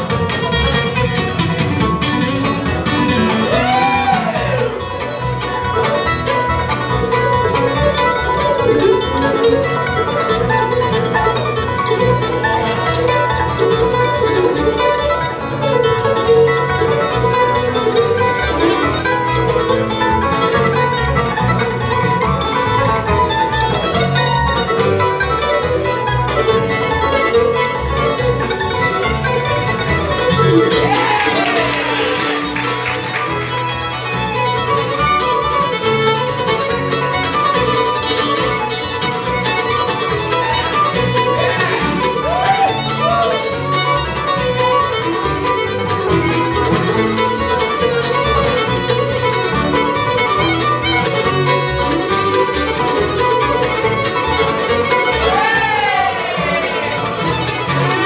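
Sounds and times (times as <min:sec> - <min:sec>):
acoustic guitar: 0:00.0 - 0:58.0
banjo: 0:00.0 - 0:58.0
fiddle: 0:00.0 - 0:58.0
mandolin: 0:00.0 - 0:58.0
upright bass: 0:00.0 - 0:58.0.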